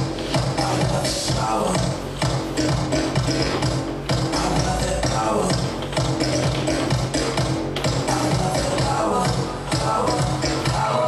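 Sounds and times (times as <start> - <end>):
dance music with steady beat: 0.0 - 11.0.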